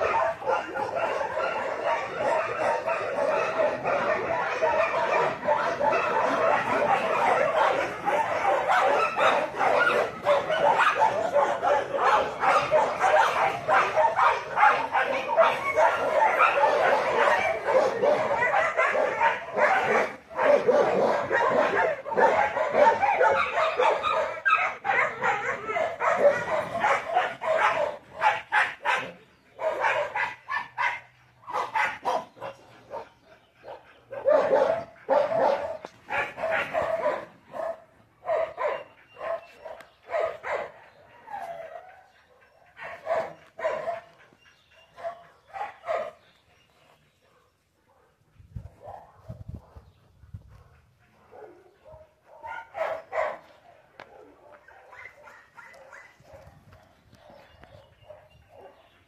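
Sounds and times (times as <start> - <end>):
dog barking: 0.0 - 46.2, 47.3 - 49.9, 50.6 - 59.0.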